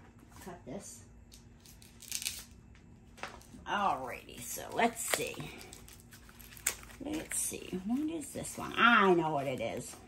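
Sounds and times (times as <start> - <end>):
plastic rustling: 4.2 - 10.0
scissors cutting plastic packaging: 4.4 - 10.0.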